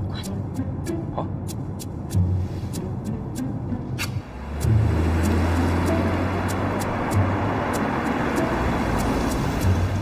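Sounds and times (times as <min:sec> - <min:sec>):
car engine hum: 0:00.0 - 0:10.0
road noise: 0:00.0 - 0:10.0.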